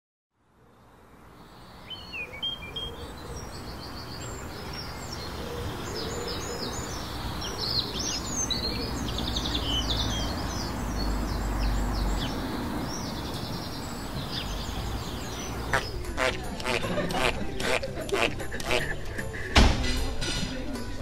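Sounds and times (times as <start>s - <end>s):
birds chirping and singing: 1.4s - 19.5s.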